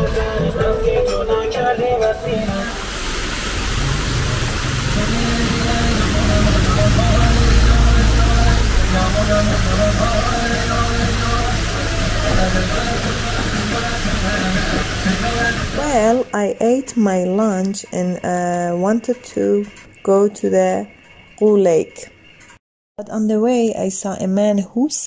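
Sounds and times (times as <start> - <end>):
music: 0.0 - 3.2, 4.8 - 22.6
steady roadside hiss: 2.3 - 16.2
low rumble: 2.9 - 16.1.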